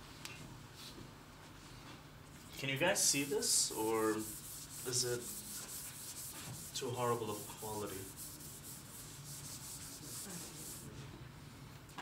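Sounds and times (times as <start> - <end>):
rapid rhythmic rubbing: 3.0 - 10.9.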